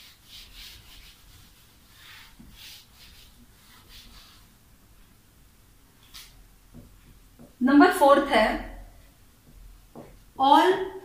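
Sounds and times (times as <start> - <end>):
eraser rubbing on whiteboard: 0.0 - 4.5, 6.0 - 6.4.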